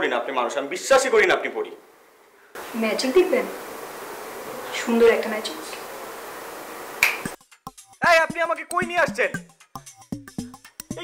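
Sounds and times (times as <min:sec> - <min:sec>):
background hiss: 0:00.0 - 0:07.9
finger snap: 0:07.0 - 0:07.4.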